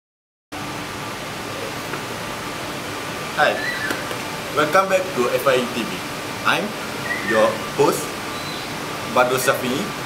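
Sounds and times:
faint steady hum: 0.6 - 10.0
steady background hiss: 0.6 - 10.0.

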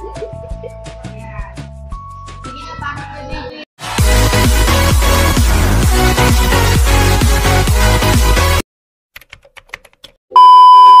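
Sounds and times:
keyboard typing clicks: 9.2 - 10.2
steady test tone beep: 10.4 - 11.0.

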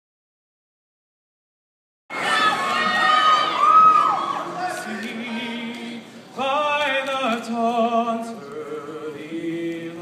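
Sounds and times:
loud high cry: 2.1 - 4.7
crowd cheering and shouting: 2.1 - 5.8.

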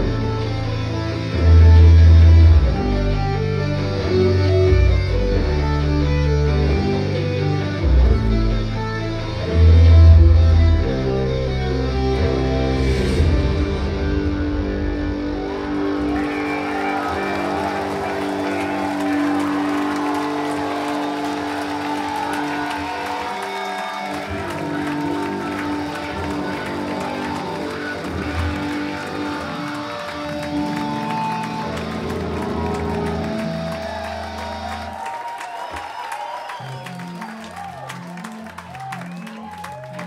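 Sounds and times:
sustained bass: 0.0 - 19.7
electric guitar lines: 0.0 - 34.9.

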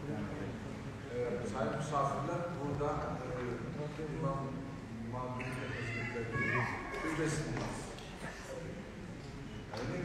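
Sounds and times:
man addressing a gathering: 0.0 - 8.7, 9.6 - 10.0.

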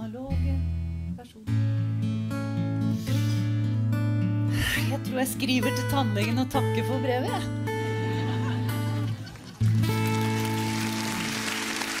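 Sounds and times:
audience applause: 8.9 - 12.0.

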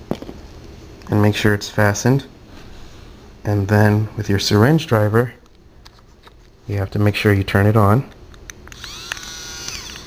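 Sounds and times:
small motor whirring whine: 8.7 - 10.0.

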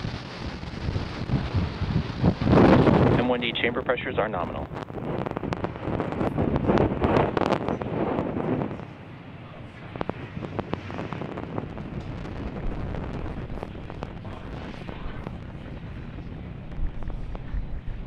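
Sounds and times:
rocket engines rumbling and crackling: 0.0 - 18.0.

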